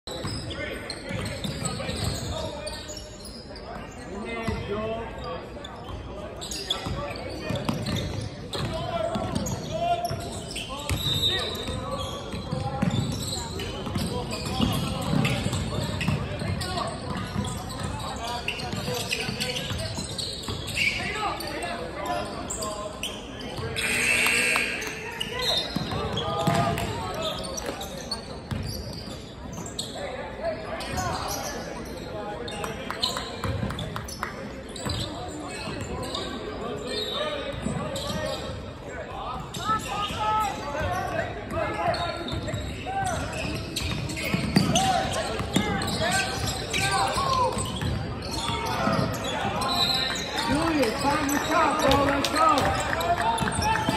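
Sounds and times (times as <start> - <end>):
sneakers squeaking: 0.1 - 53.9
players calling out: 41.8 - 53.9.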